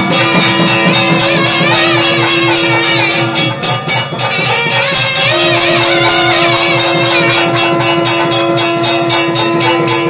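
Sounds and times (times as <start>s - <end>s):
steady held note: 0.0s - 10.0s
temple bells ringing rapidly: 0.0s - 10.0s.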